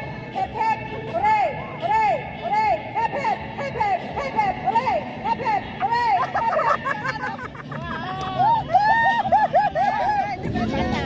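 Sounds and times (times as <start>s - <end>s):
group of people talking: 0.0s - 11.0s.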